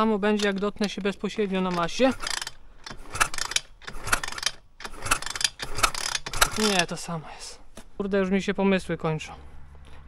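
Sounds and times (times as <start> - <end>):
engine kickstart clicking: 1.7 - 6.9.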